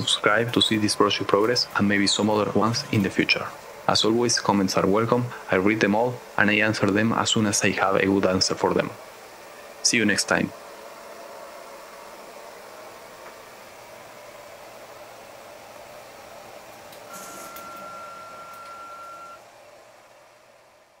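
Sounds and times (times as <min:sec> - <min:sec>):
printer machine noise: 0:00.0 - 0:09.1, 0:16.0 - 0:19.4
stepper motor high whine: 0:17.1 - 0:19.4.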